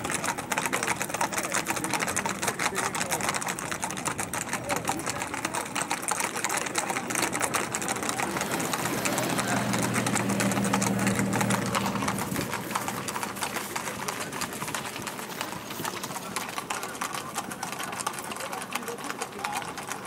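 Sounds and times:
horse hooves clattering on pavement: 0.0 - 20.0
car engine hum: 6.9 - 15.7.

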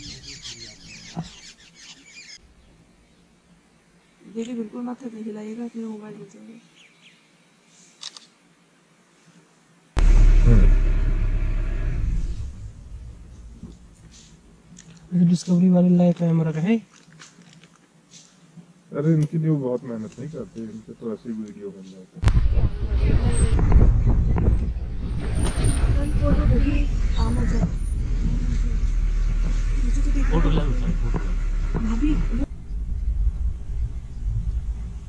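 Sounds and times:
short falling tone: 10.0 - 14.1
vehicle engine low rumble: 10.0 - 14.8, 22.2 - 35.0.

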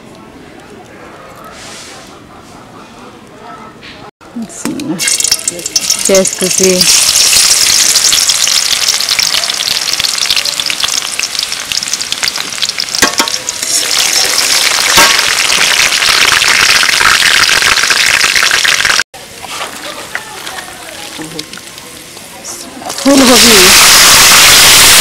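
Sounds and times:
onion sizzling in oil: 4.7 - 25.0.

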